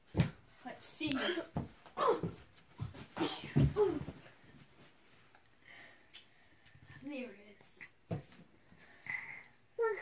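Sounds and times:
thumps of bodies on floor: 0:00.0 - 0:00.5, 0:01.4 - 0:05.0, 0:08.0 - 0:08.5
children shouting and grunting: 0:01.1 - 0:02.5, 0:09.8 - 0:10.0.

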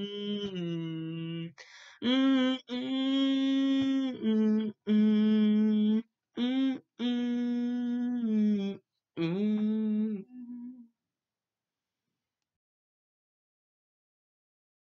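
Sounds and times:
man humming: 0:00.0 - 0:10.8.

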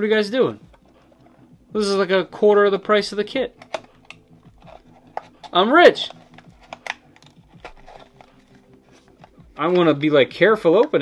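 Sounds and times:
hands handling cardboard box: 0:03.5 - 0:10.0.

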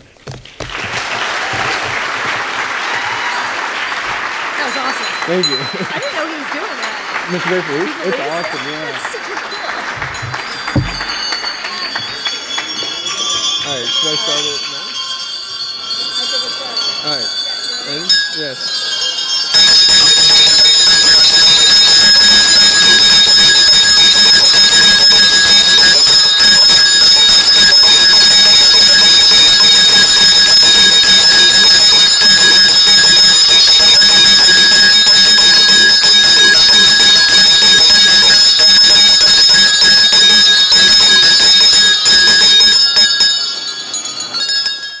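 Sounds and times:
many hand bells jangling: 0:04.6 - 0:45.0.

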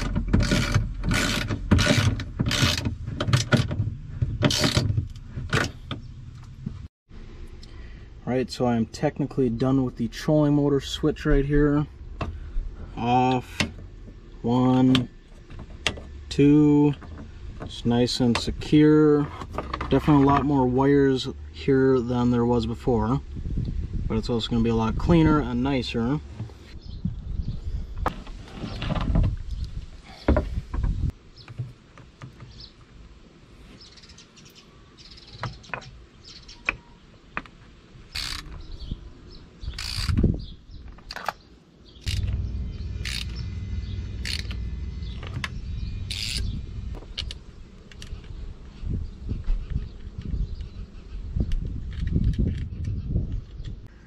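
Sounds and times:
low steady rumble: 0:00.1 - 0:28.1, 0:42.1 - 0:53.9
metallic clicks of hand tools: 0:38.1 - 0:38.6, 0:42.0 - 0:42.4, 0:43.0 - 0:43.5, 0:44.2 - 0:44.6, 0:45.4 - 0:46.5
handling noise: 0:42.0 - 0:53.8.

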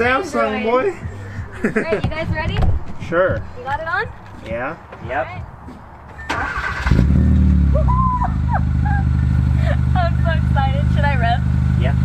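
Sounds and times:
car engine revving and idling: 0:06.4 - 0:12.0.

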